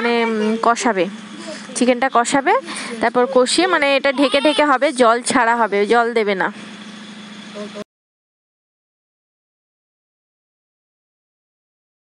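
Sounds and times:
woman speaking: 0.0s - 6.6s
low hum with hiss: 0.0s - 7.9s.

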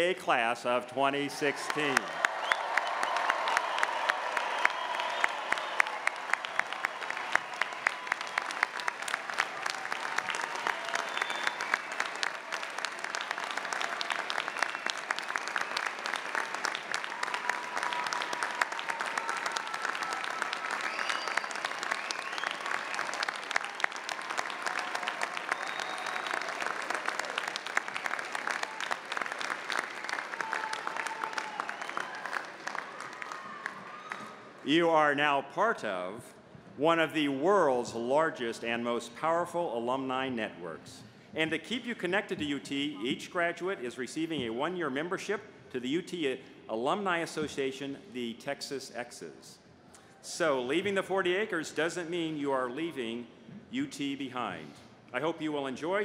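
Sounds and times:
audience applauding: 1.4s - 34.6s
cheers and calls: 1.4s - 34.6s.

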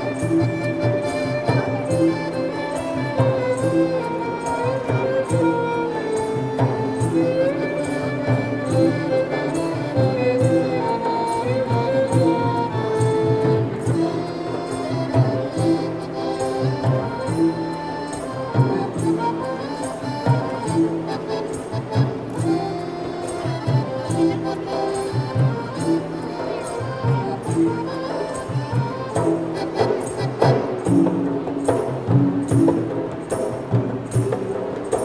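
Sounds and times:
accordion melody: 0.0s - 35.0s
hand drum: 0.0s - 35.0s.

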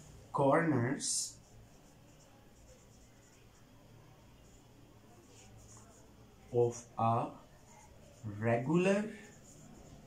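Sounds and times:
marker writing on a whiteboard: 0.0s - 10.0s.

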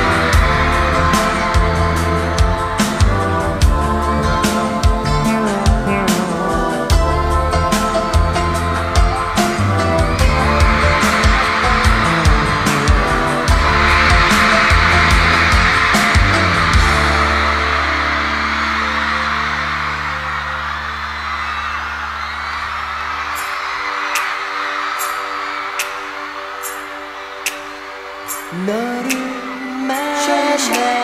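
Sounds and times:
live rock band playing: 0.0s - 21.6s
audience screaming: 0.0s - 31.0s.

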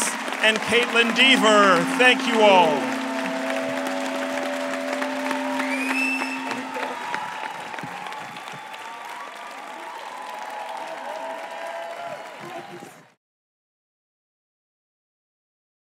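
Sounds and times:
audience applause: 0.0s - 13.2s.

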